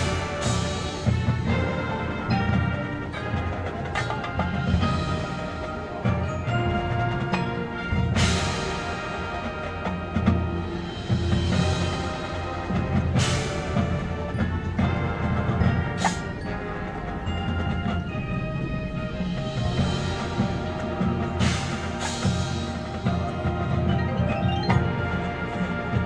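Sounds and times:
brass and wind chords: 0:00.0 - 0:26.0
marching drums and percussion: 0:00.0 - 0:26.0.

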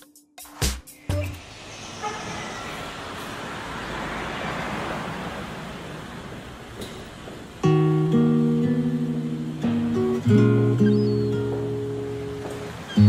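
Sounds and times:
road traffic rush: 0:00.9 - 0:13.0.

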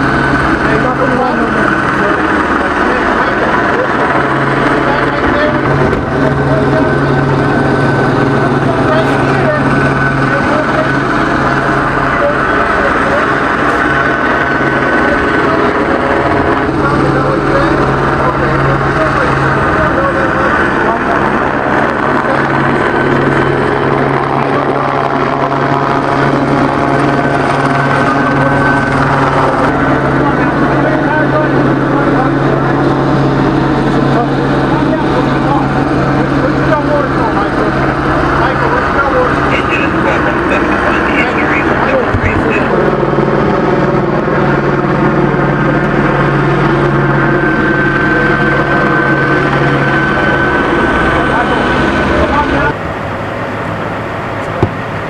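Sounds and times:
helicopter drone overhead: 0:00.0 - 0:55.0
indistinct voices: 0:00.0 - 0:55.0.

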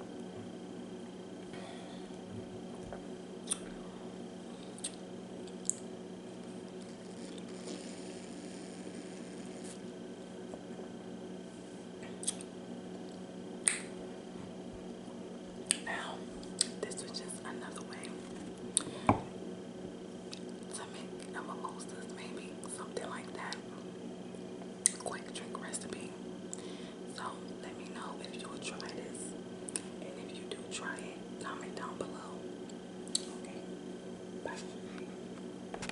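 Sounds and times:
steady low hum: 0:00.0 - 0:35.9
woman whispering: 0:15.8 - 0:18.2, 0:20.7 - 0:23.7, 0:24.9 - 0:26.2, 0:27.1 - 0:29.3, 0:30.0 - 0:32.4, 0:34.4 - 0:34.9.

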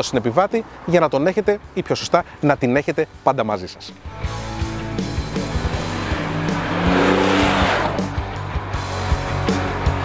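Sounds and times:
background music with steady beat: 0:01.5 - 0:10.0
motorcycle rushing past: 0:04.0 - 0:10.0.

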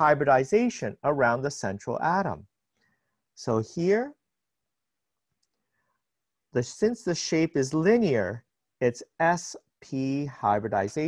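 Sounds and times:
man speaking: 0:00.0 - 0:02.6, 0:03.4 - 0:04.3, 0:06.4 - 0:11.0.

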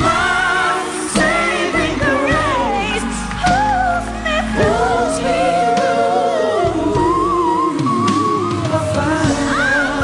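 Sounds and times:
choir and band backing: 0:00.0 - 0:10.0.

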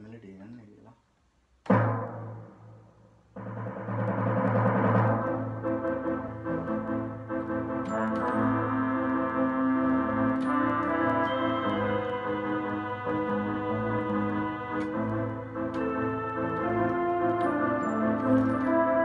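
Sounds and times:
electronic keyboard music: 0:04.8 - 0:19.0.

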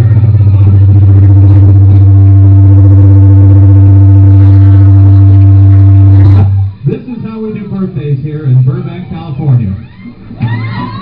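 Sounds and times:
amplified band low drone: 0:00.0 - 0:08.9.

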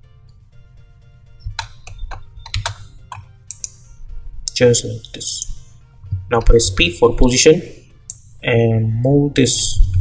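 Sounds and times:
soft background music: 0:00.0 - 0:10.0
keyboard keys clicking: 0:01.5 - 0:03.8.

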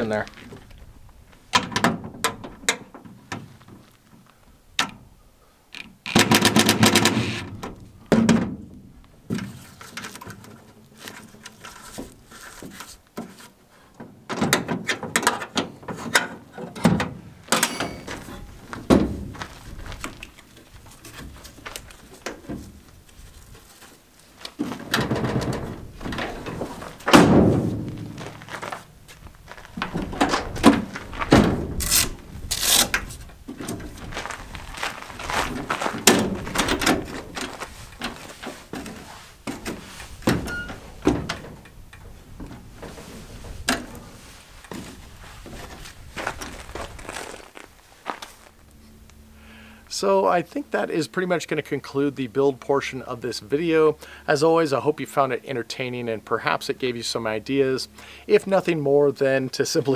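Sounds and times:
tailgate and ladder clanking: 0:06.2 - 0:08.7, 0:14.0 - 0:20.2, 0:24.5 - 0:29.0, 0:29.8 - 0:32.2, 0:35.6 - 0:46.5.

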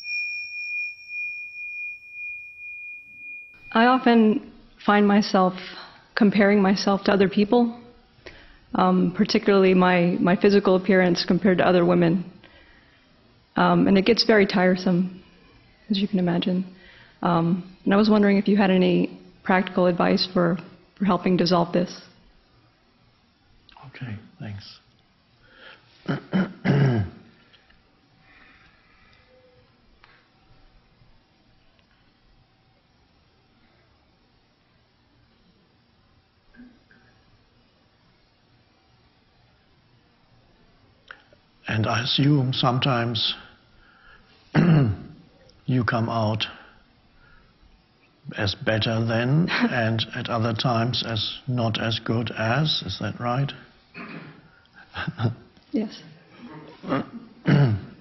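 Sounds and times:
struck bell chime: 0:00.0 - 0:03.9
person clearing throat: 0:26.0 - 0:27.3, 0:44.5 - 0:45.2, 0:54.0 - 0:55.2, 0:56.4 - 0:58.0.

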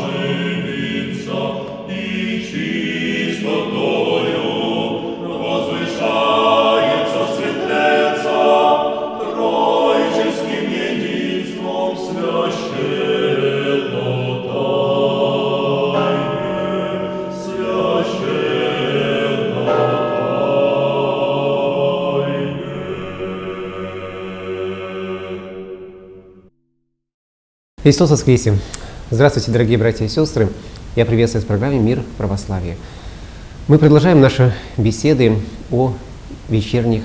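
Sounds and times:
choir singing a hymn: 0:00.0 - 0:26.5.

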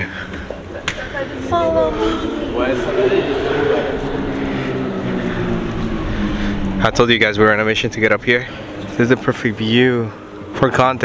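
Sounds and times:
engine-like drone: 0:00.0 - 0:11.0
low rumble: 0:00.2 - 0:10.6.

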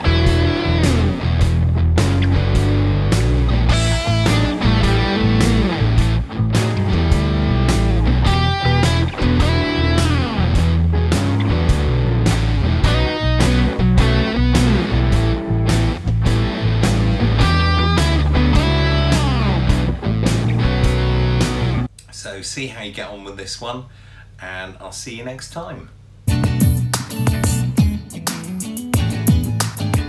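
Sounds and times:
electric guitar blues licks: 0:00.0 - 0:21.9
blues backing track: 0:00.0 - 0:22.0, 0:26.3 - 0:30.0.

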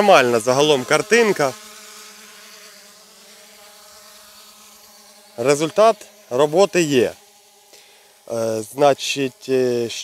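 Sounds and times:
faint insect buzzing: 0:00.0 - 0:10.0.

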